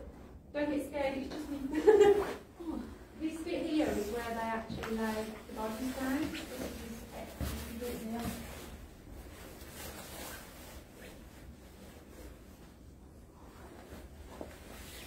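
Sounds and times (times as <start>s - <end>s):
faint rustling and handling: 0.0s - 15.0s.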